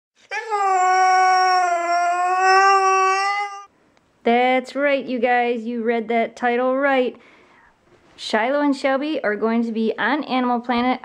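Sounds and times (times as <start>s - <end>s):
dog howling: 0.2s - 3.7s.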